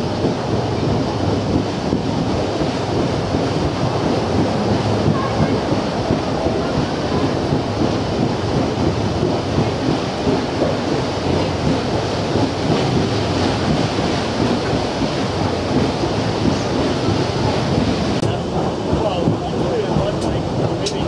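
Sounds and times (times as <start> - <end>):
paddle wheels churning water: 0.0 - 21.0.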